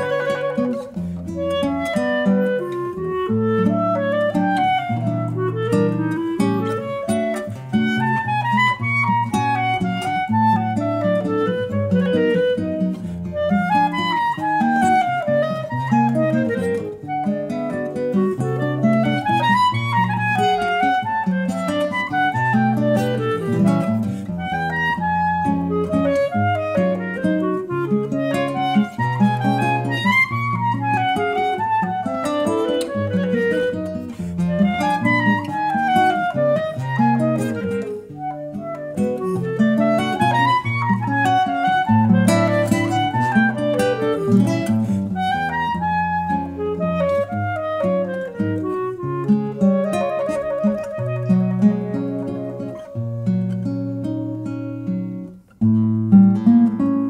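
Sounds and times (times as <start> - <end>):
clarinet melody: 0.0 - 57.0
fingerpicked classical guitar: 0.0 - 57.0.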